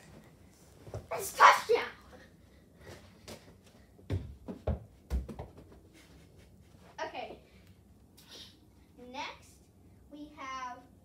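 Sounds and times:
child shouting: 1.1s - 2.0s.

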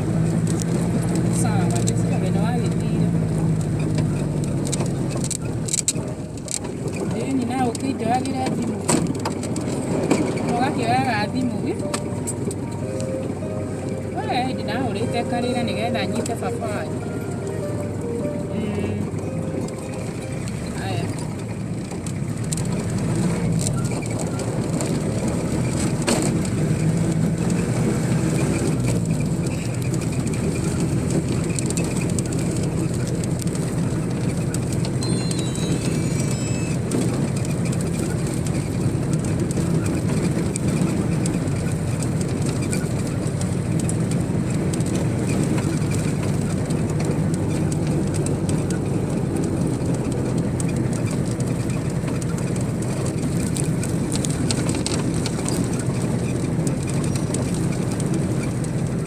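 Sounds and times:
road and engine rumble: 0.0s - 59.0s
high stepped beeps: 35.0s - 36.8s.

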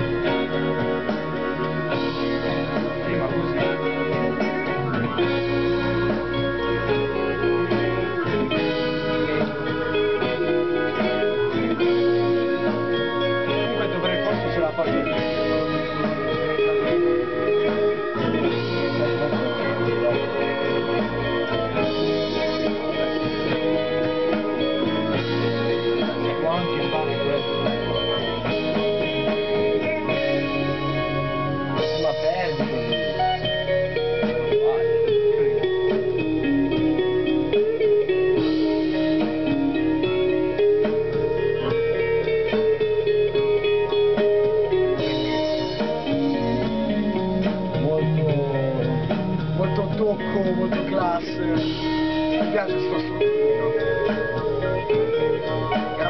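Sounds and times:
bending lead guitar line: 0.0s - 56.0s
psychedelic rock over monitors: 0.0s - 56.0s.

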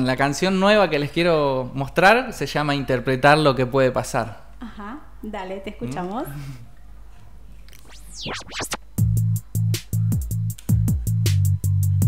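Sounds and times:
sweeping pitch glides: 7.7s - 8.8s
electronic backing track: 7.8s - 11.8s.

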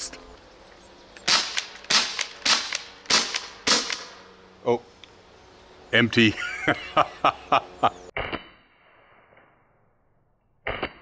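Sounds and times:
air gun pops: 1.2s - 4.2s, 10.6s - 11.0s.

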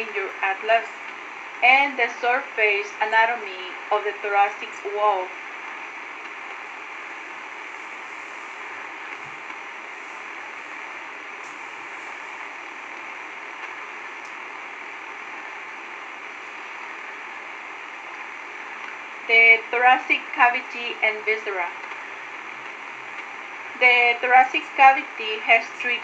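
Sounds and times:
steady background hiss: 0.0s - 26.0s.

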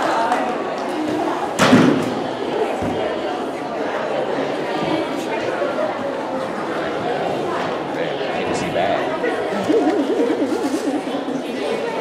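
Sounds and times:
crowd chatter in a gym: 0.0s - 12.0s.

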